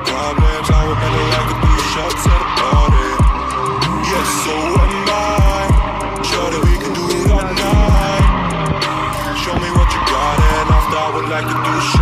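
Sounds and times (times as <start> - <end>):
car tires screeching: 0.0 - 12.0
hip-hop beat with booming bass: 0.0 - 12.0.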